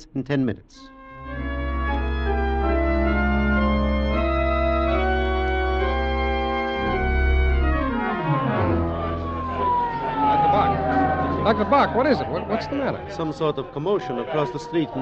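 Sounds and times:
organ chords: 0:00.9 - 0:15.0
siren winding down: 0:01.2 - 0:15.0.

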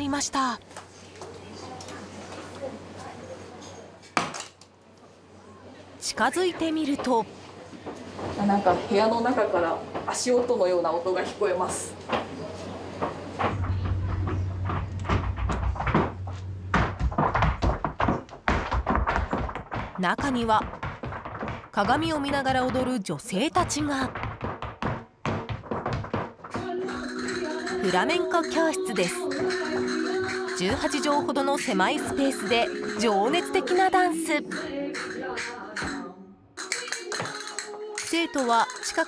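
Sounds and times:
shoes stamping on wooden floor: 0:13.0 - 0:26.7.

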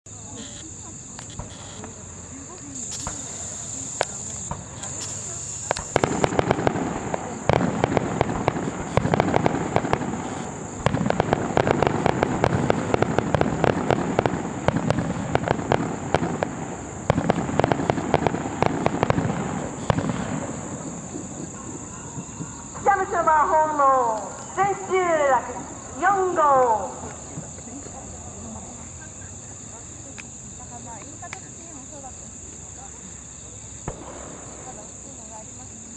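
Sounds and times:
fireworks crackling and banging: 0:00.2 - 0:35.9
fireworks pops: 0:00.4 - 0:25.4, 0:26.5 - 0:28.0, 0:30.0 - 0:31.8, 0:33.7 - 0:35.4.

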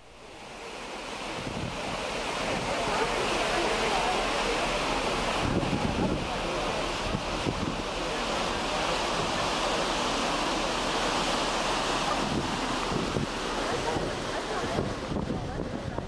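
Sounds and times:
ship's wake churning water: 0:00.0 - 0:16.0
wind buffeting microphone: 0:01.2 - 0:03.0, 0:05.4 - 0:08.0, 0:11.8 - 0:16.0.

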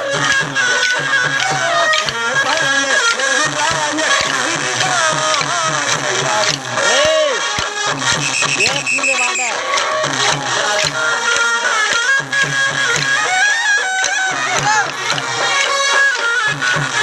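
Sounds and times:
folk music with steady beat: 0:00.0 - 0:17.0
voices: 0:00.0 - 0:17.0.

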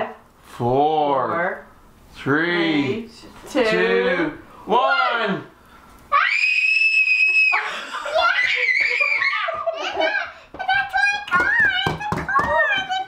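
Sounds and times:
boy screaming with delight: 0:06.1 - 0:10.1
child laughing: 0:07.3 - 0:10.8.

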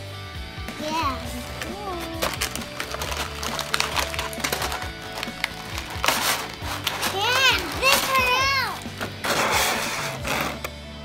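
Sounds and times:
plastic packaging rustling: 0:01.4 - 0:10.7.

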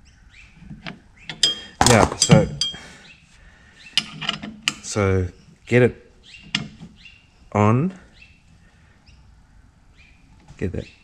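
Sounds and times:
metal tools clinking on brake drum: 0:01.3 - 0:02.9.

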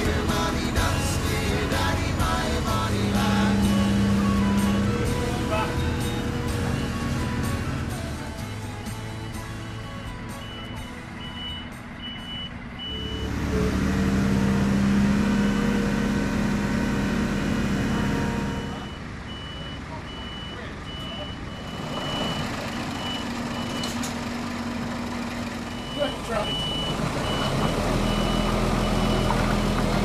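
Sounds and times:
lorry diesel engine: 0:00.0 - 0:30.0
reversing alarm beeping: 0:03.3 - 0:08.3, 0:10.3 - 0:13.4, 0:15.2 - 0:15.9, 0:17.8 - 0:24.0, 0:25.7 - 0:30.0.

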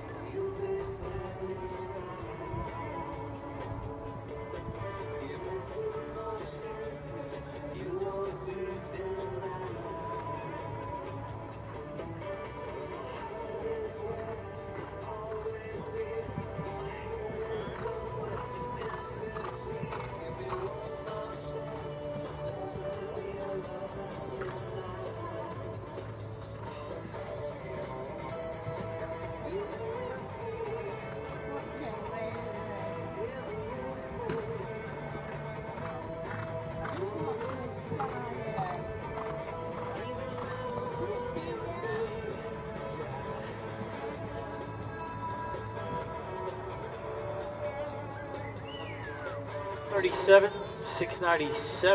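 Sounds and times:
music playing: 0:00.0 - 0:51.9
hooves thudding on sand: 0:07.8 - 0:51.9.

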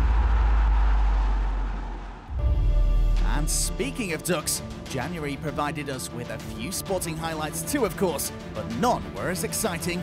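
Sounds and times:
rushing noise: 0:00.0 - 0:03.0
deep bass rumble: 0:00.0 - 0:04.0.

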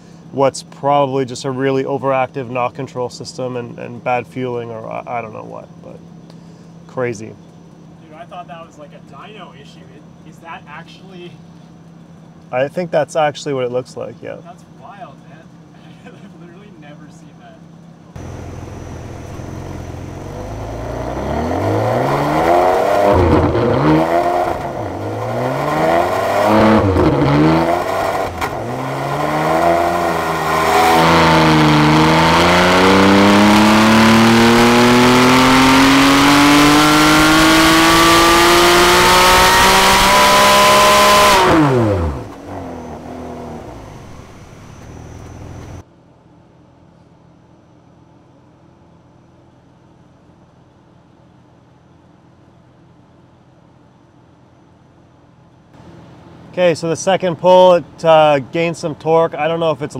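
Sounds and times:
car engine revving on a dyno: 0:18.2 - 0:45.8.

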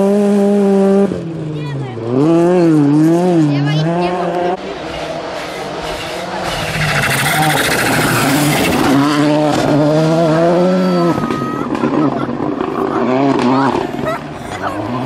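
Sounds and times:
rally car engine revving: 0:00.0 - 0:15.0.

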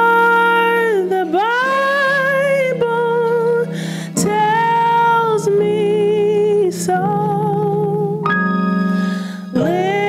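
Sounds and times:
woman singing into microphone: 0:00.0 - 0:08.5, 0:09.3 - 0:10.0
backing music: 0:00.7 - 0:10.0.

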